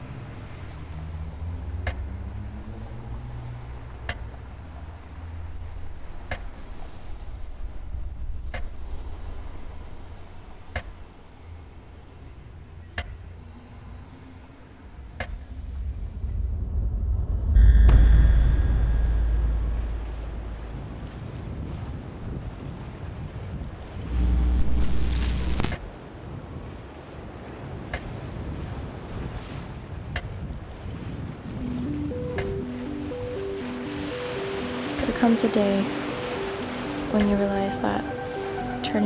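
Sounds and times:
deep cinematic boom: 15.7 - 21.2
harsh noisy burst with rumble: 15.9 - 20.9
ocean surf rushing: 17.6 - 39.0
soft melody of held notes: 31.5 - 39.0.

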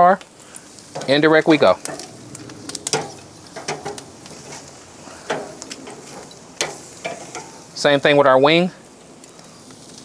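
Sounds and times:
chicken sizzling on grill: 0.0 - 10.0
metal tongs clanking on grate: 0.7 - 7.7.

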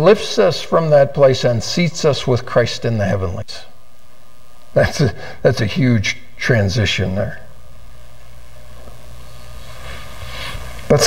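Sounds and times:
man speaking: 0.0 - 3.8, 4.7 - 7.6
low room hum: 0.0 - 11.0.

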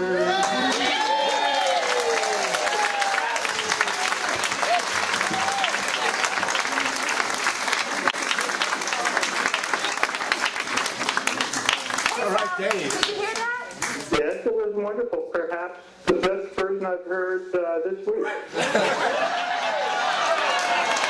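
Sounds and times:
shouts from audience: 0.2 - 6.4
audience applauding and cheering: 0.2 - 14.1, 19.1 - 21.0.

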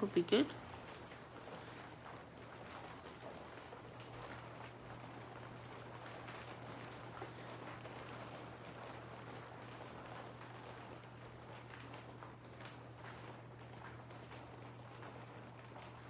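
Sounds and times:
faint rain falling: 0.0 - 16.0
low steady hum: 0.0 - 16.0.

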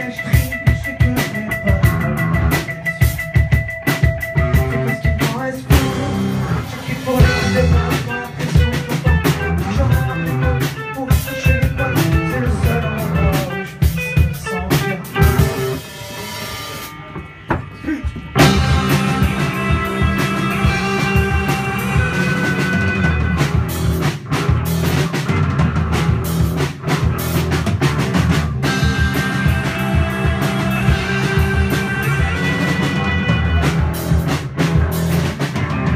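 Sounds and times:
rock band playing: 0.0 - 35.9.

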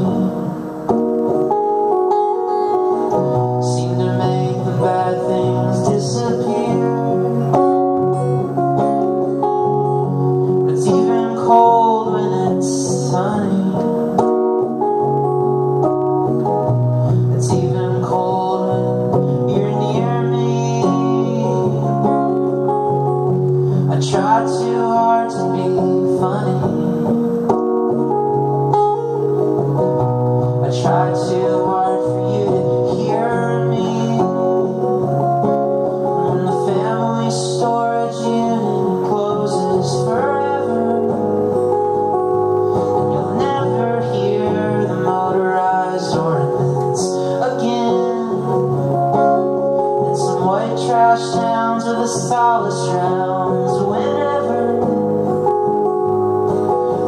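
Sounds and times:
man singing: 0.0 - 1.6, 2.4 - 27.6, 30.4 - 55.8
acoustic guitar strumming: 0.0 - 57.0.

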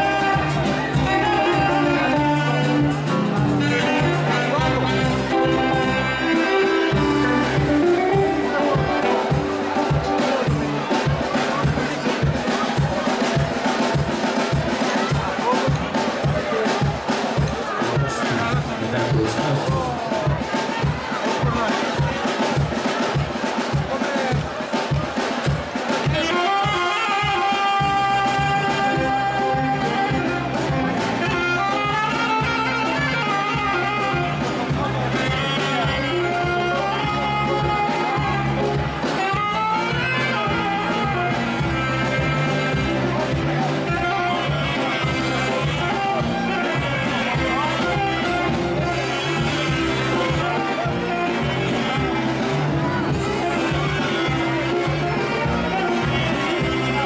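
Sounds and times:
bass line: 0.0 - 12.3, 26.2 - 57.0
plucked guitar: 0.0 - 13.5
alto saxophone melody: 0.0 - 18.8, 25.8 - 57.0.

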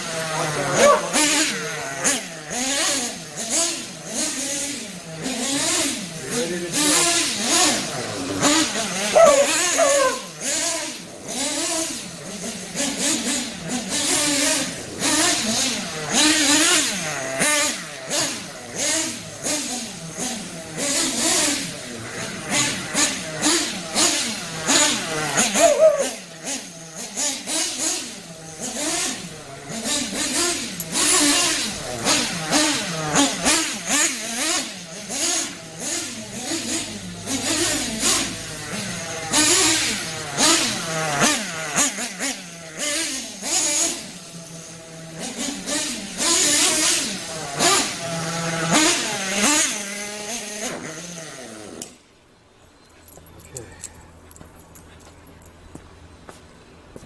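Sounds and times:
model car engine revving: 0.0 - 52.2.

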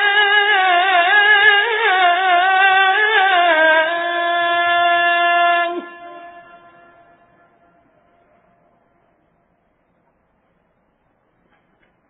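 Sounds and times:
man singing call to prayer: 0.0 - 7.8.

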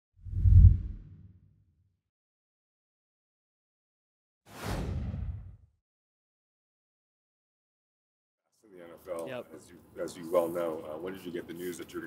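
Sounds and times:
deep whoosh: 0.2 - 1.3, 4.6 - 5.6.

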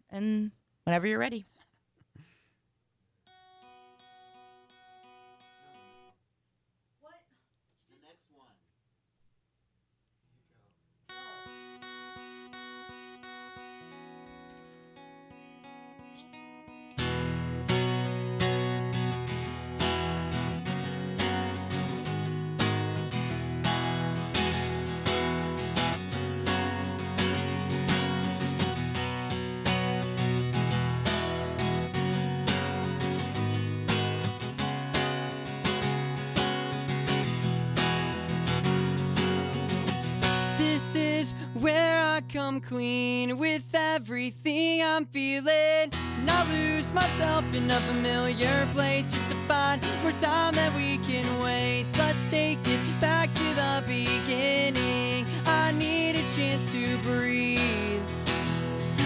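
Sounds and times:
acoustic guitar playing: 3.2 - 6.2, 11.1 - 59.0.

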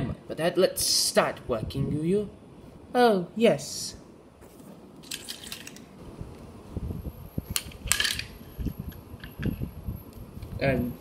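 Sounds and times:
toys clacking together: 5.0 - 5.9, 7.6 - 9.6.

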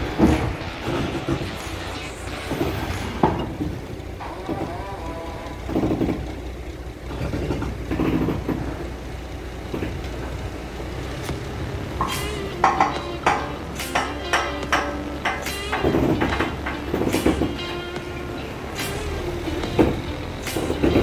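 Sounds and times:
truck rumbling over steel bridge: 0.0 - 21.0
metallic clanks and rattles: 5.4 - 9.0, 12.0 - 21.0.

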